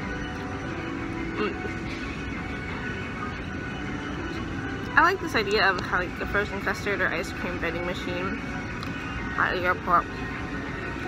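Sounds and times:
airport terminal hum: 0:00.0 - 0:11.0.

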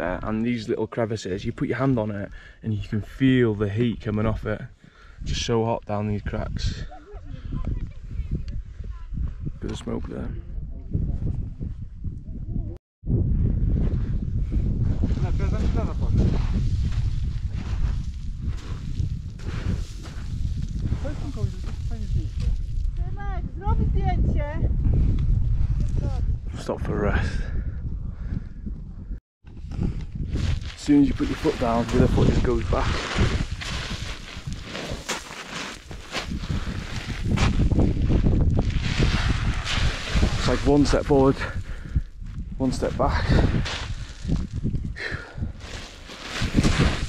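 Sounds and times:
wind buffeting microphone: 0:03.8 - 0:47.0
footsteps crunching on gravel: 0:30.3 - 0:40.6.

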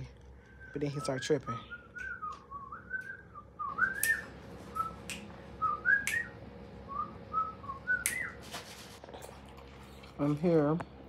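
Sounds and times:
person whistling a tune: 0:00.5 - 0:06.3.

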